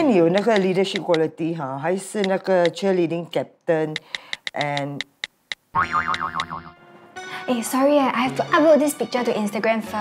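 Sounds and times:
short clicks: 3.9s - 5.6s
comic boing sound effect: 5.7s - 6.8s.

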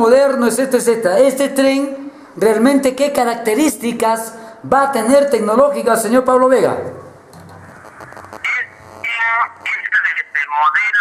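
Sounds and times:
low background hum and hiss: 0.0s - 11.0s.

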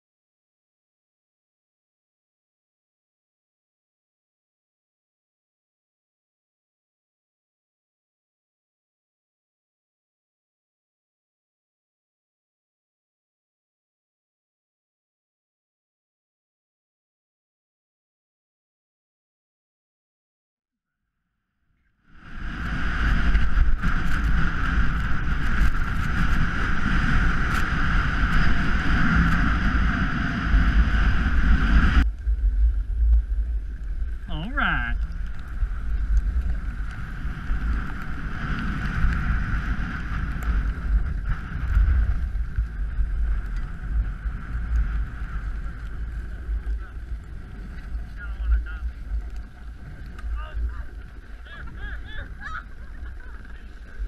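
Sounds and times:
low rumble: 22.1s - 54.0s
wind rushing over microphone: 22.1s - 54.0s.

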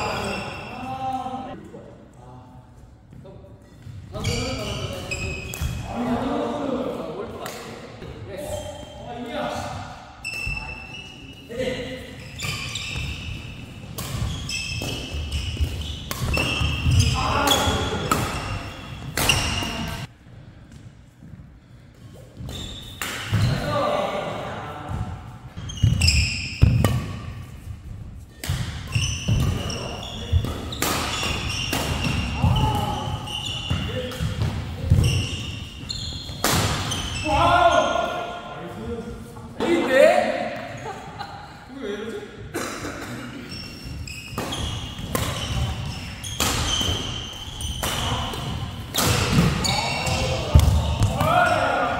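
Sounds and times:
shoes squeaking on court floor: 0.0s - 1.2s, 3.0s - 5.8s, 8.4s - 20.1s, 21.0s - 23.7s, 24.9s - 38.4s, 43.3s - 51.9s
players' voices: 0.0s - 13.1s, 15.4s - 20.1s, 23.3s - 26.0s, 28.5s - 43.6s, 44.5s - 51.9s.

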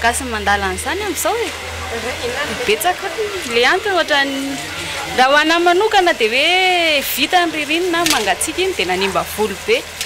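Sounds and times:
woman speaking: 0.0s - 9.9s
hair dryer running: 0.0s - 10.0s.

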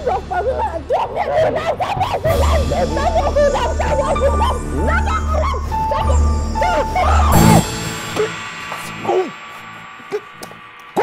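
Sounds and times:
background music with bass: 0.0s - 11.0s
woman screaming: 0.4s - 7.7s.

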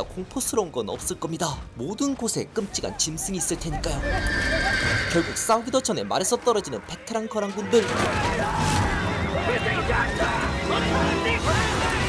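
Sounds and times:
dramatic orchestral music: 0.0s - 12.0s
horses whinnying: 3.7s - 5.8s
battle din: 7.4s - 12.0s.

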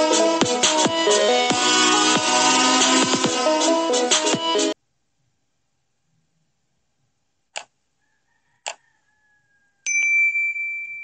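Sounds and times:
mouse clicks: 7.5s - 7.7s
notification bell ding: 9.9s - 11.0s.

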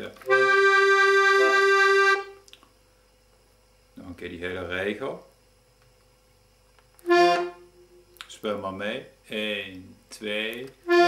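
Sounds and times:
piano accordion playing: 0.2s - 2.4s, 7.1s - 7.8s.

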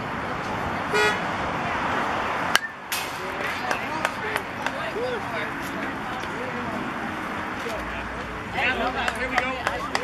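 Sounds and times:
outdoor ballfield noise: 0.0s - 10.0s.

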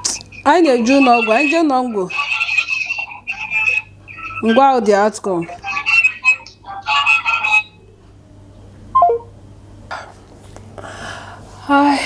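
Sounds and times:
voice over phone loudspeaker: 0.0s - 7.8s.

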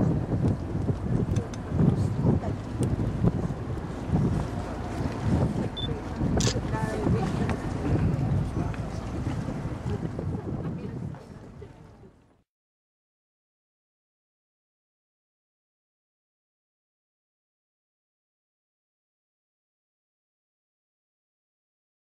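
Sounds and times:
wind buffeting microphone: 0.0s - 12.2s
faint voices: 5.4s - 12.4s.

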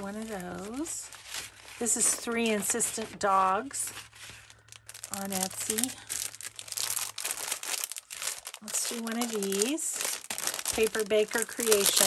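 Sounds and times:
plastic sleeves crinkling: 0.0s - 12.0s.

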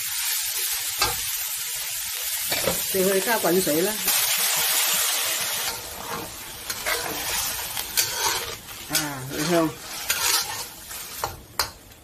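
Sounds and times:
water hissing in hot wok: 0.0s - 12.0s.

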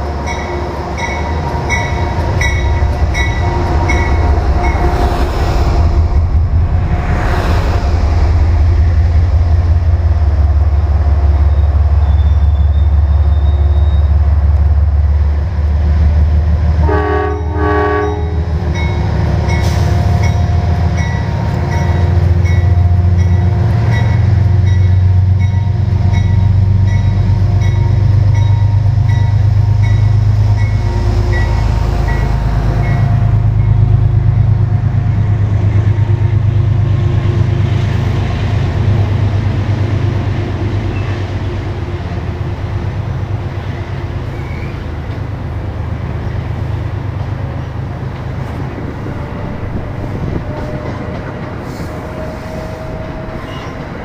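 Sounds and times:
train horn: 0.0s - 6.4s, 16.8s - 19.0s, 29.6s - 33.7s, 49.0s - 54.0s
train rumbling: 0.0s - 54.0s
locomotive bell ringing: 0.2s - 5.1s, 17.4s - 34.0s.

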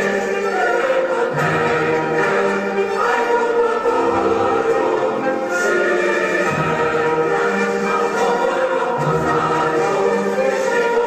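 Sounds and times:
children singing in chorus: 0.0s - 11.0s.

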